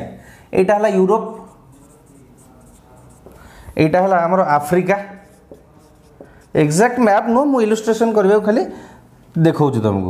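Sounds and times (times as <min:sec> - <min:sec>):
man speaking: 0:00.0 - 0:08.8
marker scratching on whiteboard: 0:01.2 - 0:08.1.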